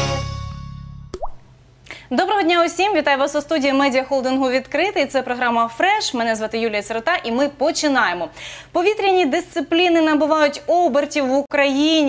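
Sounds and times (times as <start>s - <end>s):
jingle chord: 0.0s - 1.0s
water-drop plop effect: 1.1s - 1.5s.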